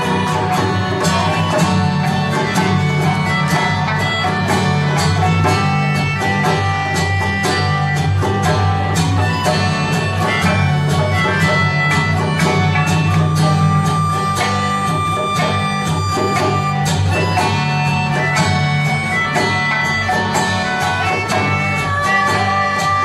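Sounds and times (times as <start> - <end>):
melodica melody: 0.0 - 23.0
plucked sanshin: 0.0 - 23.0
strummed acoustic guitar: 0.0 - 23.0.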